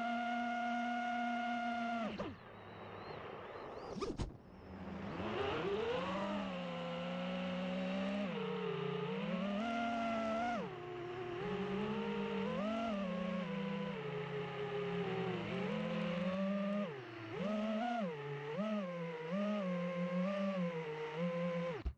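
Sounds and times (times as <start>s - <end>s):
quadcopter motors whining: 0.0s - 21.9s.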